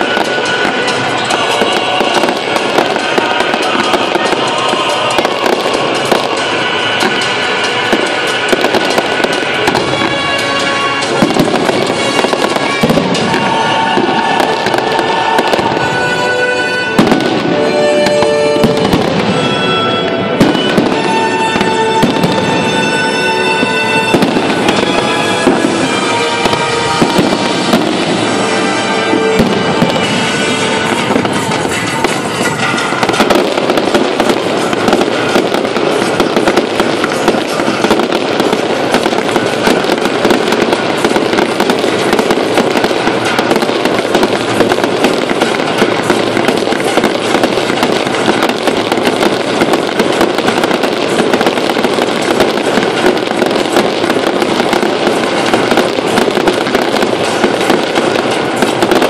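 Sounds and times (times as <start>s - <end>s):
fireworks bangs and crackling: 0.0s - 59.0s
music playing: 0.0s - 59.0s.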